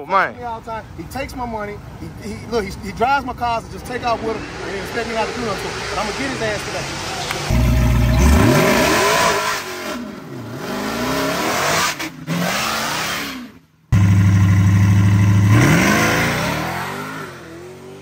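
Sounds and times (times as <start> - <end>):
car engine at full throttle: 4.3 - 18.0.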